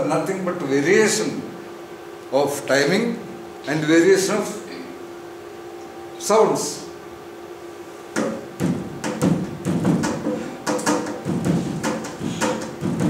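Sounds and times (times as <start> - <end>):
hand drumming on hard surface: 8.2 - 13.0.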